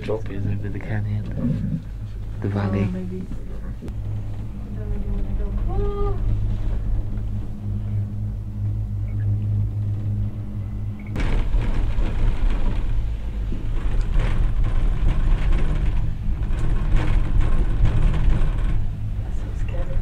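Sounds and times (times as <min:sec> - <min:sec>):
cable car cabin humming: 0:00.0 - 0:20.0
cable car rumbling clatter: 0:00.0 - 0:20.0.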